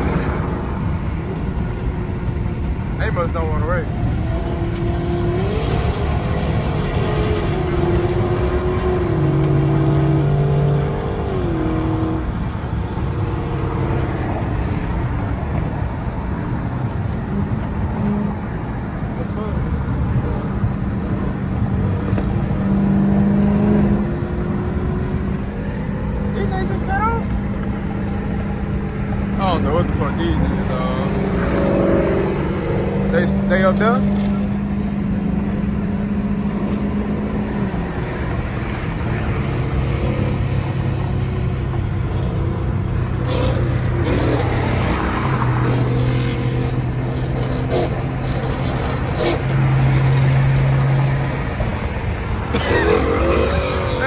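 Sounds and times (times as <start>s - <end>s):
car engine drone: 0.0s - 54.0s
tyre and road noise: 0.0s - 54.0s.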